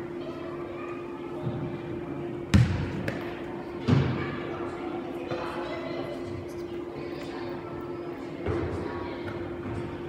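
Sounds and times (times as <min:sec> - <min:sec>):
soccer ball thuds in echoing hall: 0:02.4 - 0:04.5, 0:08.4 - 0:10.0.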